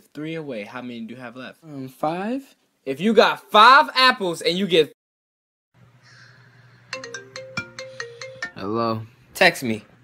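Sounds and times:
mobile phone ringtone: 6.9 - 8.6.

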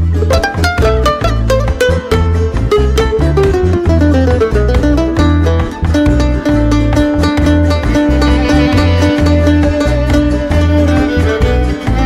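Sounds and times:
jaranas strummed in fast rhythm: 0.0 - 12.0
plucked bass figure: 0.0 - 12.0
plucked lead melody: 0.0 - 12.0
string band playing: 0.0 - 12.0.

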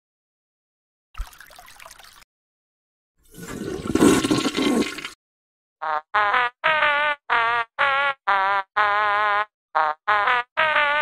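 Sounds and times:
toilet flushing: 3.2 - 5.2.

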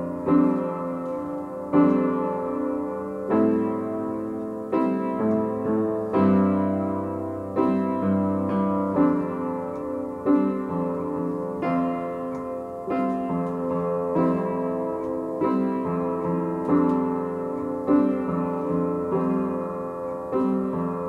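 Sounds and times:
upright piano chords: 0.0 - 21.0.

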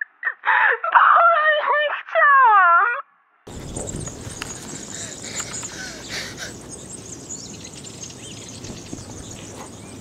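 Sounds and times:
woman sobbing and wailing: 0.0 - 3.1
outdoor hiss: 3.5 - 10.0.

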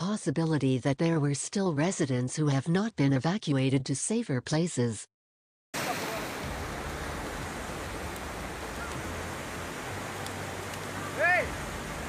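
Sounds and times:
floodwater rushing: 5.8 - 12.0.

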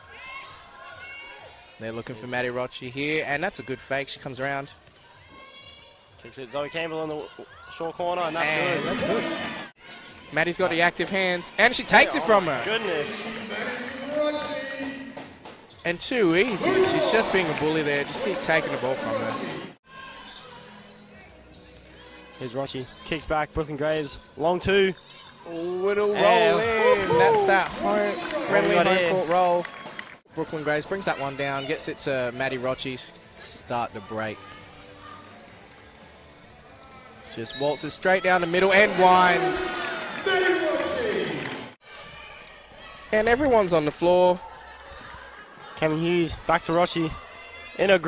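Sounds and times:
sneakers squeaking: 4.7 - 10.3, 11.2 - 17.4, 18.0 - 23.1, 23.9 - 28.0, 33.0 - 38.4, 44.4 - 45.7.

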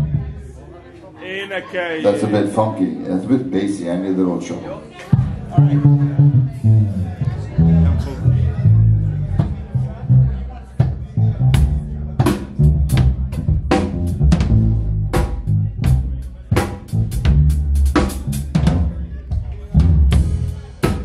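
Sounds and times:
drum kit beat: 5.2 - 21.0
electric bass line: 5.6 - 18.9, 19.8 - 21.0.

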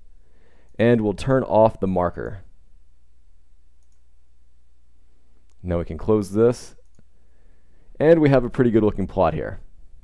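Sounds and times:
computer mouse click: 3.8 - 4.1, 6.8 - 7.1.

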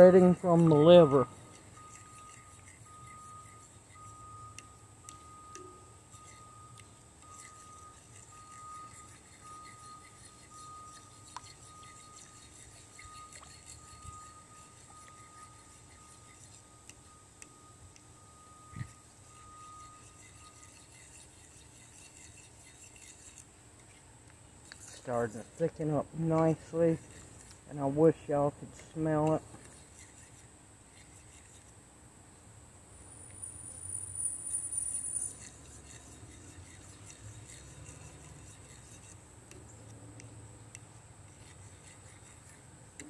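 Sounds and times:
fork scraping metal skillet: 0.0 - 17.2, 18.7 - 23.9, 34.7 - 39.6
faint pulsing high tone: 0.0 - 21.0, 32.9 - 35.5.

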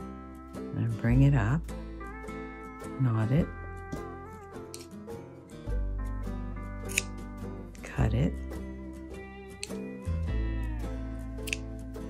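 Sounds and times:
background music: 0.0 - 12.0
scissors snip: 6.9 - 7.2, 9.6 - 9.9, 11.4 - 11.7.

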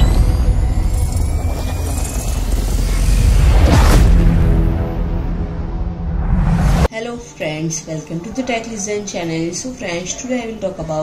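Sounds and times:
deep rumble: 0.0 - 6.9.

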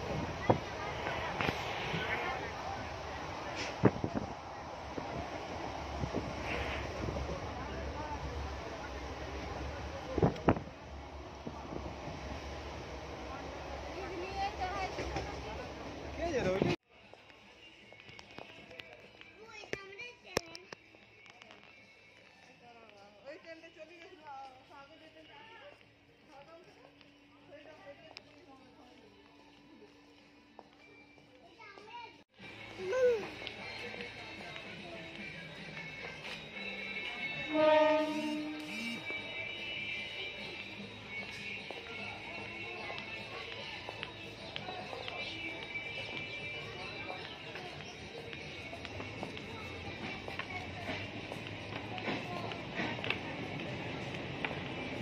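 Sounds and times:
wind rush through window: 0.0 - 8.6
train rumble: 0.0 - 16.8, 32.4 - 55.0
faint voices: 0.0 - 55.0
young child babbling: 32.8 - 33.3.

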